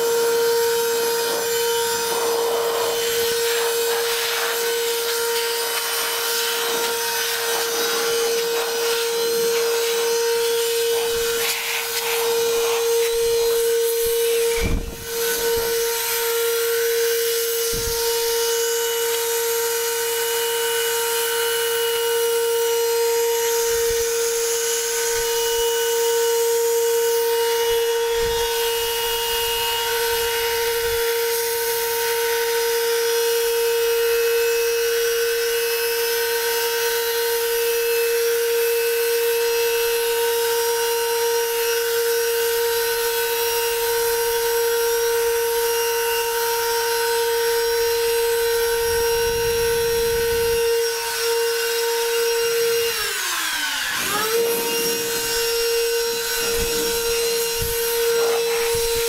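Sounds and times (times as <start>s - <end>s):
vacuum motor blower whining: 0.0s - 59.0s
air rushing from nozzle: 0.3s - 19.9s, 52.7s - 59.0s.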